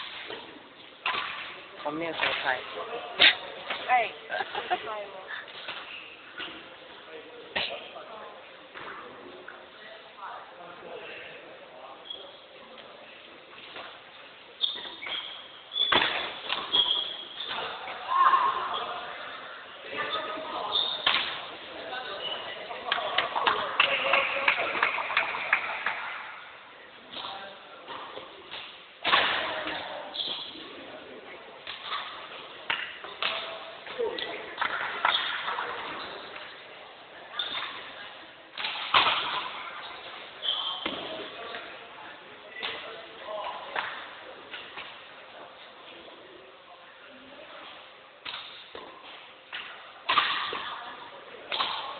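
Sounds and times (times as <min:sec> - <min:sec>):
rackets hitting shuttlecock: 0:01.0 - 0:01.6, 0:14.7 - 0:17.8, 0:20.9 - 0:21.5, 0:27.9 - 0:29.9, 0:31.6 - 0:36.5, 0:38.5 - 0:41.6, 0:48.2 - 0:51.9
sneakers squeaking on court floor: 0:13.6 - 0:23.6, 0:29.5 - 0:30.9, 0:37.3 - 0:41.8.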